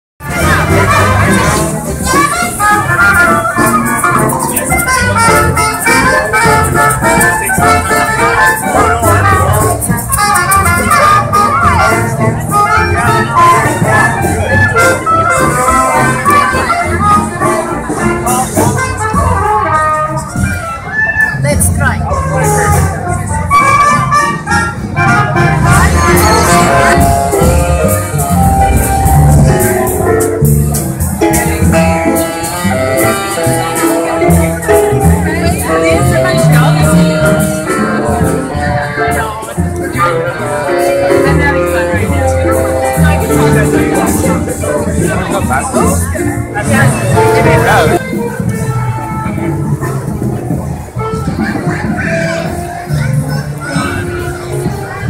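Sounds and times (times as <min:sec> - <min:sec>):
crowd voices talking and calling: 0:00.2 - 0:55.0
music playing: 0:00.2 - 0:55.0.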